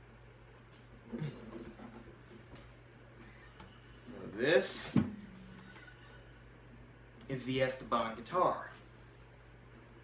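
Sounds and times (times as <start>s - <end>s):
faint room hum: 0.0s - 10.0s
knock on acoustic guitar body: 4.9s - 5.4s.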